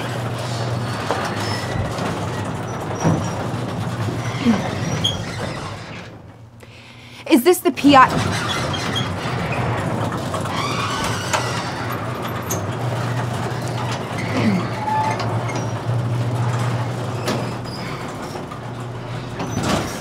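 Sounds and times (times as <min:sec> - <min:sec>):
door panels rumbling and knocking: 0:00.0 - 0:06.6, 0:07.8 - 0:20.0
garage door opener humming: 0:00.0 - 0:20.0.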